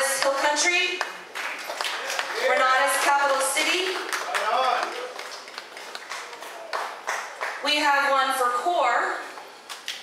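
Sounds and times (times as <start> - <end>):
crowd hand clapping: 0.0 - 7.7.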